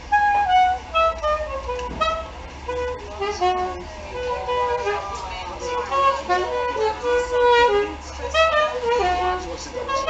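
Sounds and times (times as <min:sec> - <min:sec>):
soprano saxophone melody: 0:00.0 - 0:10.0.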